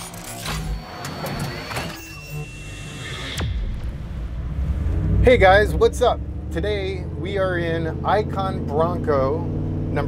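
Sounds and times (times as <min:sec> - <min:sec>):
glitchy electronic clicks: 0:00.0 - 0:03.8
music: 0:00.0 - 0:04.5
sharp hit: 0:02.8 - 0:06.6
low rumble: 0:03.4 - 0:08.7.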